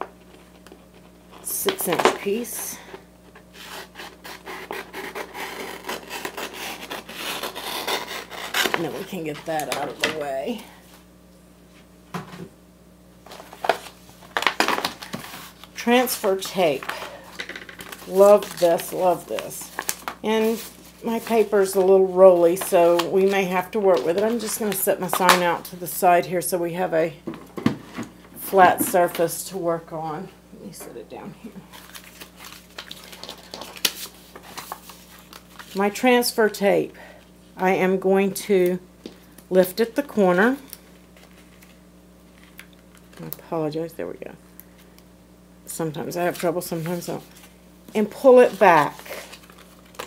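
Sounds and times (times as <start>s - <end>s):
tape sheet crinkling: 3.2s - 10.3s, 13.2s - 26.1s, 31.6s - 36.6s, 40.2s - 43.4s, 46.2s - 50.0s.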